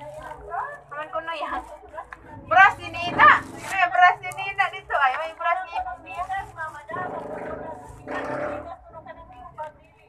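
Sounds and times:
low rough growling voice: 7.0 - 8.7.

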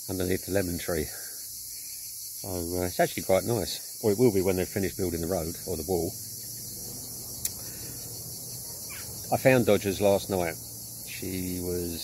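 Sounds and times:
insect chorus: 0.0 - 12.0.

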